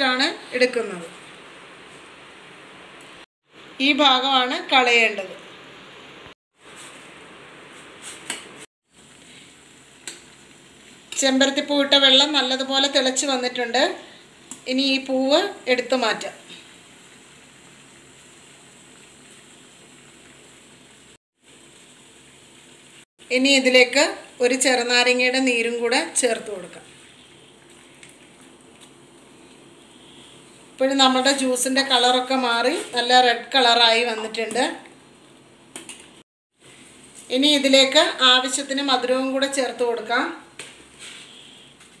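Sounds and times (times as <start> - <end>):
pot bubbling at a boil: 8.8 - 12.4, 14.0 - 32.4.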